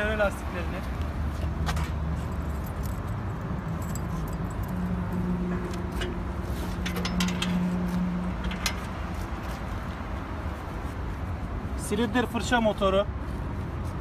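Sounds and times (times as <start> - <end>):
metallic clinks and rattles: 2.2 - 5.1, 6.0 - 7.7.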